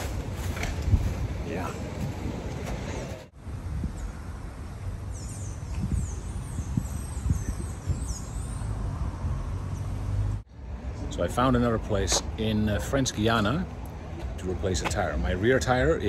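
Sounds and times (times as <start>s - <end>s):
birds chirping: 5.0s - 11.5s.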